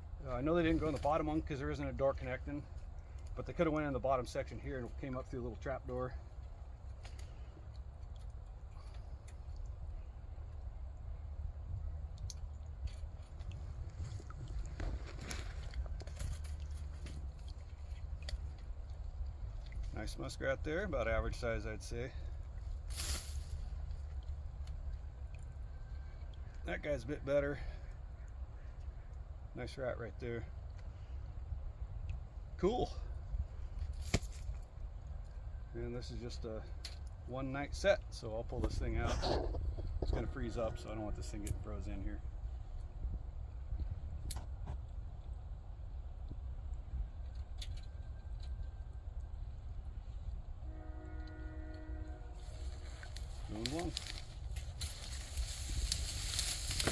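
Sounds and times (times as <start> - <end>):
wind rumble on microphone: 6.3 - 21.4, 38.4 - 56.9
horn-like tone: 50.6 - 53.9
hands rustling in wire trap: 52.6 - 56.9.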